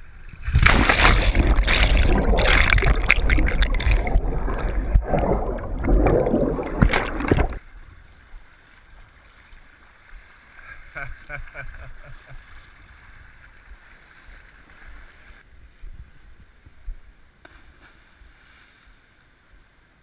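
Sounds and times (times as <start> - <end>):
underwater river churning: 0.3 - 15.4.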